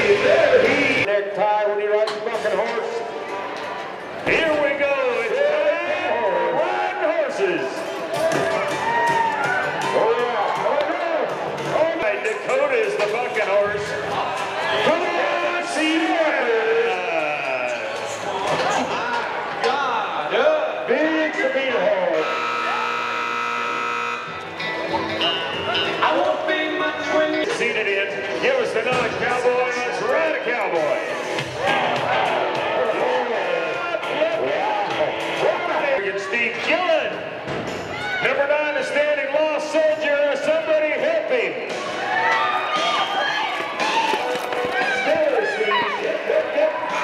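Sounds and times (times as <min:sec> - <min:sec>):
man talking loudly: 0:14.8 - 0:17.8
arena buzzer steady tone: 0:22.2 - 0:24.6
men's voices and shouts: 0:42.6 - 0:47.0.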